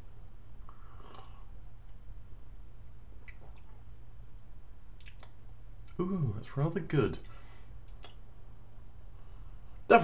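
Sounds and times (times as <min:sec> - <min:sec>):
low steady hum: 0:00.0 - 0:10.0
lip smacks and mouth clicks: 0:01.1 - 0:02.6, 0:03.2 - 0:03.8, 0:05.0 - 0:06.0, 0:07.8 - 0:08.3.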